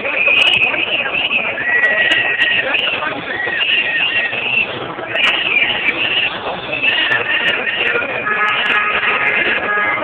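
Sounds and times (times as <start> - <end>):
protest crowd voices: 0.0 - 10.0.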